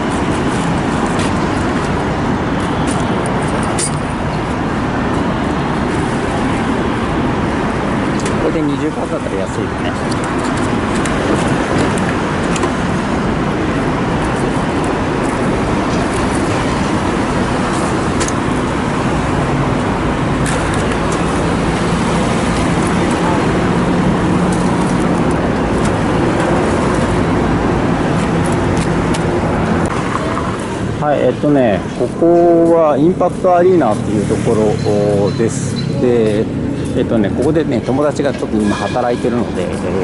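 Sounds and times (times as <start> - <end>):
engine hum: 0.0 - 38.6
street traffic: 0.0 - 40.0.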